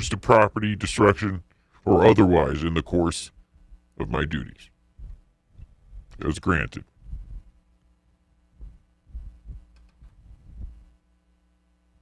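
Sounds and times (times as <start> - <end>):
faint electrical hum: 0.0 - 12.0
microphone handling thumps: 5.0 - 6.2, 6.9 - 7.5, 8.5 - 10.9.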